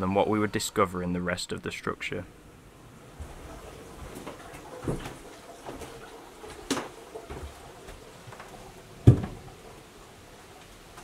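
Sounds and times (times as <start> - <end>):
faint room hiss: 0.0 - 11.0
footsteps: 3.2 - 9.4
thumps inside a building: 8.4 - 9.5.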